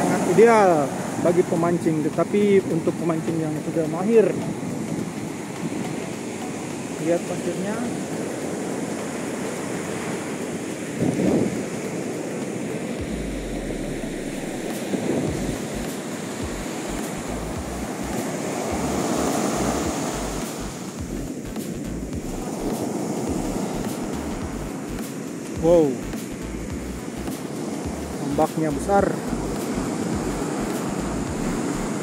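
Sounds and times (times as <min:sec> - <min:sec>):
ocean waves breaking on beach: 0:00.0 - 0:32.0
wind buffeting microphone: 0:07.8 - 0:24.9.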